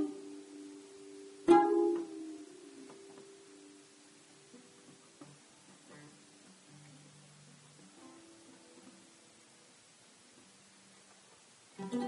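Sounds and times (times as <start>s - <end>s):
oud plucked notes: 0.0s - 9.5s.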